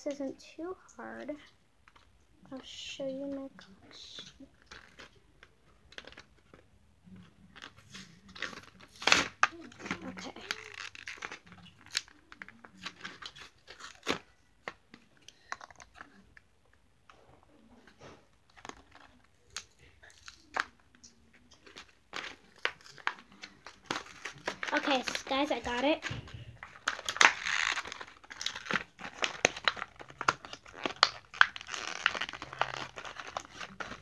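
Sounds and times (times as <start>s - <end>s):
plastic packaging crinkling and tearing: 1.4s - 16.4s, 17.6s - 34.0s.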